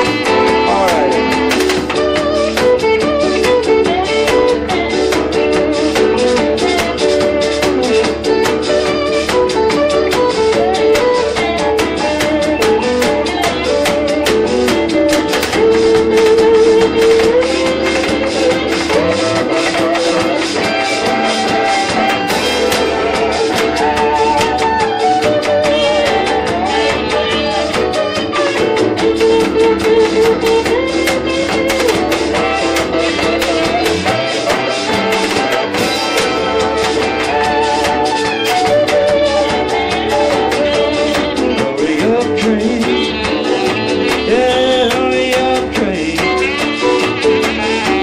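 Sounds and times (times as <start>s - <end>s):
drums: 0.0s - 48.0s
electric guitar: 0.0s - 48.0s
saxophone: 0.0s - 48.0s.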